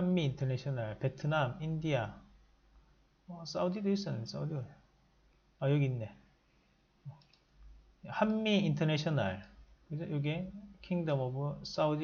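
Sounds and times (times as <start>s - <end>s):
computer mouse clicks: 7.1s - 7.5s.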